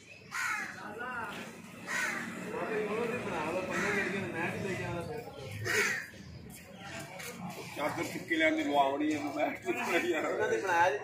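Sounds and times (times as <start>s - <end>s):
people's voices: 0.0s - 11.0s
crows cawing: 0.2s - 1.0s, 1.7s - 4.7s, 5.6s - 6.2s.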